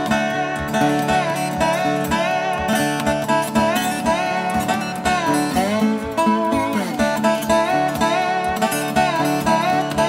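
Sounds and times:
slide guitar: 0.0 - 10.0.

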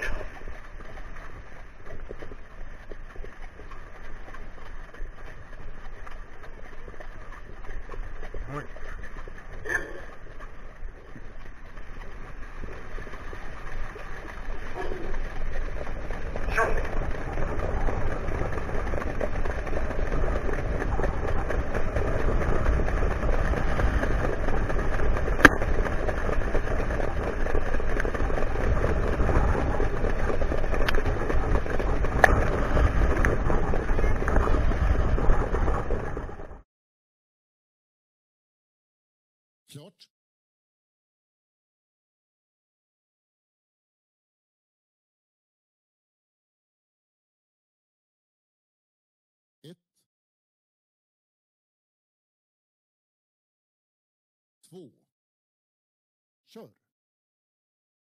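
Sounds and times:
wheels rumbling on dirt track: 0.0 - 36.6
wind rushing over microphone: 11.8 - 36.6.

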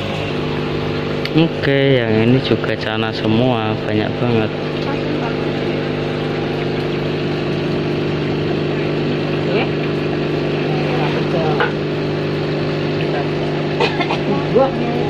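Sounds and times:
aquarium air pumps humming: 0.0 - 15.0.

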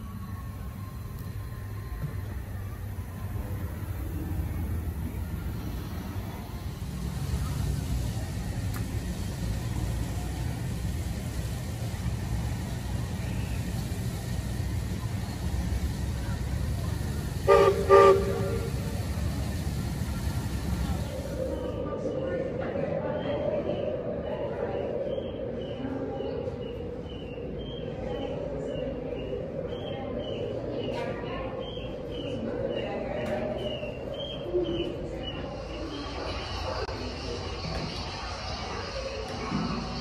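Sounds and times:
low outdoor rumble: 0.0 - 40.0.

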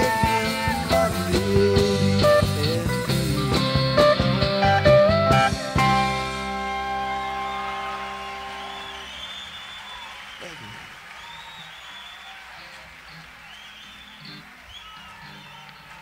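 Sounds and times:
country-rock band playing: 0.0 - 9.4, 12.6 - 16.0
drums: 0.0 - 16.0.

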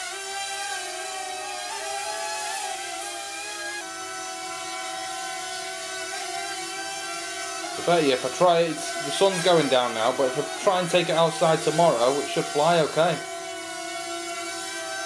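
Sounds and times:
quadcopter motors whining: 0.0 - 15.0.

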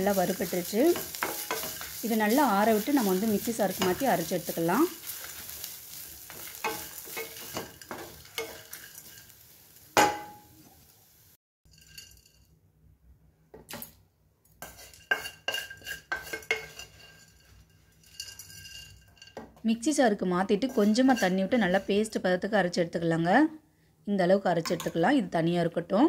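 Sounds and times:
wooden spatula scraping pan: 0.0 - 9.4, 14.6 - 19.3, 20.5 - 22.1
faint sizzle: 0.0 - 12.1.

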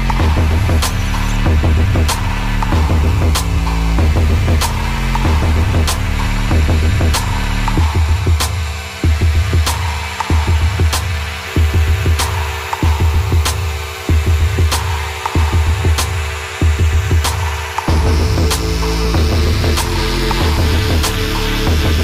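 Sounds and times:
electronic music with steady beat: 0.0 - 22.0.

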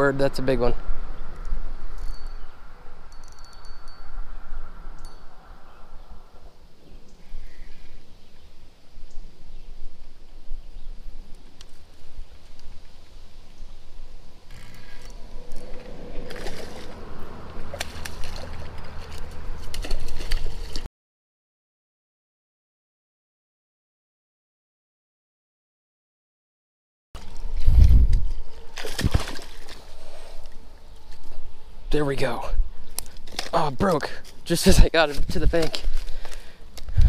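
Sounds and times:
wind rumbling on microphone: 0.0 - 20.9, 27.2 - 33.4, 34.7 - 37.0
water splashing and sloshing: 14.2 - 20.9, 27.2 - 31.4.

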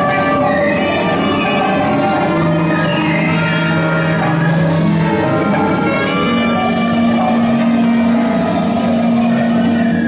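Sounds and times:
large ensemble improvising: 0.0 - 10.0.

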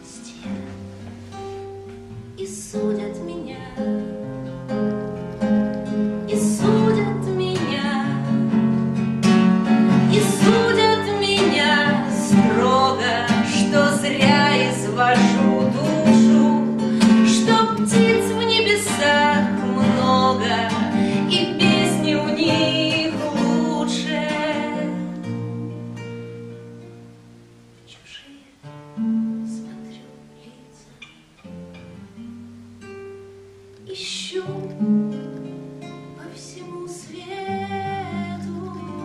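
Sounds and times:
woman singing: 0.0 - 0.8, 2.3 - 4.8, 5.9 - 8.8, 9.9 - 26.0, 27.9 - 28.7, 29.4 - 31.2, 33.8 - 39.0
nylon-string guitar: 0.0 - 39.0.

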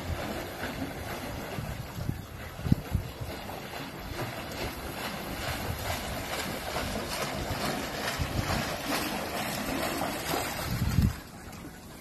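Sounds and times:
wind rumble on microphone: 0.0 - 11.8
water splashing and sloshing: 0.0 - 12.0.

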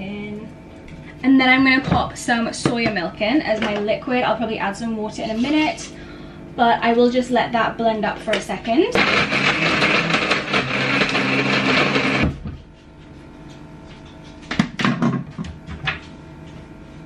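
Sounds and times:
blender crushing ice: 9.0 - 12.4.

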